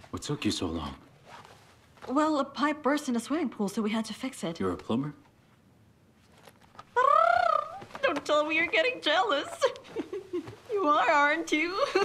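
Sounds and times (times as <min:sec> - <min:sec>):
woman's teasing wordless vocal: 0:07.0 - 0:09.9, 0:10.7 - 0:12.0.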